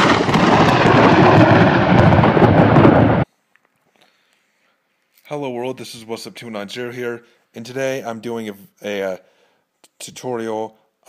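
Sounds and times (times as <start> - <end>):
rolling thunder rumble: 0.0 - 3.2.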